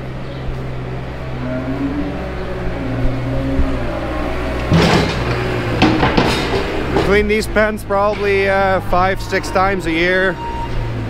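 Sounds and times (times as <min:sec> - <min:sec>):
wheel loader diesel engine: 0:00.0 - 0:11.0.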